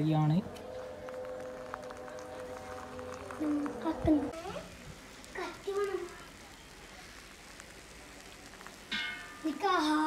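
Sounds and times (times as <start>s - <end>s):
small crackles: 0.4s - 10.0s
egg sizzling in metal ladle: 0.6s - 10.0s.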